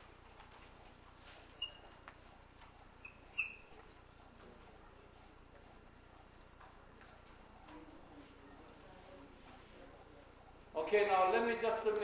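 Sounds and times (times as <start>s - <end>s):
chalk squeaks: 1.5s - 2.0s, 3.0s - 3.8s.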